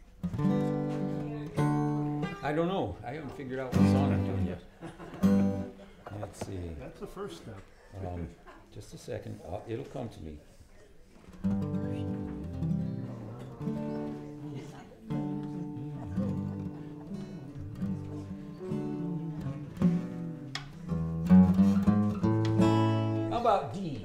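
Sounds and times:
acoustic guitar strumming chords: 0:00.0 - 0:02.5, 0:03.7 - 0:04.6, 0:05.2 - 0:05.8, 0:11.4 - 0:23.4.

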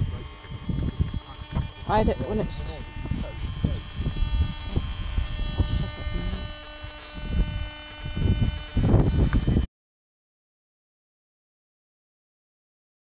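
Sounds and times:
steady buzzing hum: 0:00.0 - 0:09.7
wind gusts on microphone: 0:00.0 - 0:09.7.

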